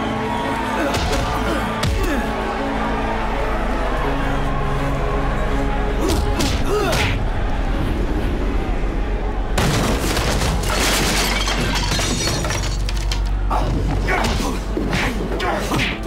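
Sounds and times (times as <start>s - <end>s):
film music: 0.0s - 16.0s
film voices: 13.4s - 16.0s.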